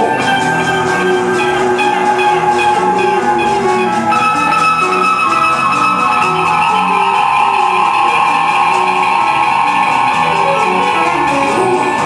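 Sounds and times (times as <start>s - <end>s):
guitar accompaniment: 0.0s - 12.0s
harmonica sustained notes: 0.0s - 12.0s.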